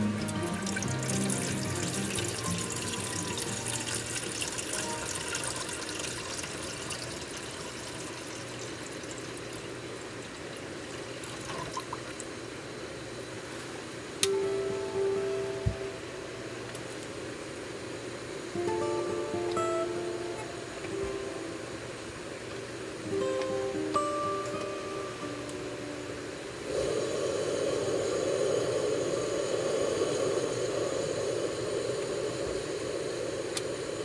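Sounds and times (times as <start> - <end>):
soft background music: 0.0 - 6.3, 14.2 - 16.7, 18.5 - 22.4, 23.0 - 26.6
water pouring into metal pot: 0.0 - 12.3.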